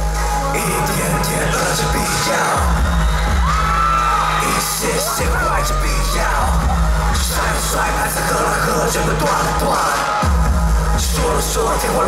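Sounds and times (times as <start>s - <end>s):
live pop music with pulsing bass: 0.0s - 12.0s.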